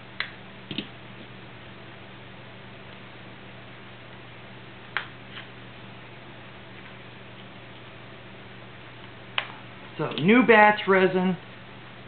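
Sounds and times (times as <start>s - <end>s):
electrical hum and hiss: 0.0s - 12.0s.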